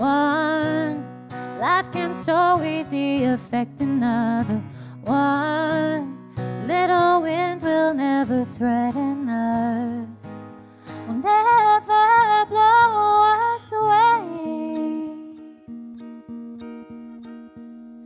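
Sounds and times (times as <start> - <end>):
woman singing with vibrato: 0.0 - 10.4, 11.1 - 15.7
acoustic guitar: 0.0 - 18.0.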